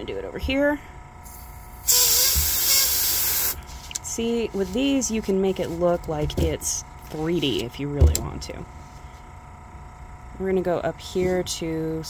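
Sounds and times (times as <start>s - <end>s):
airbrush spraying hiss: 1.3s - 3.6s.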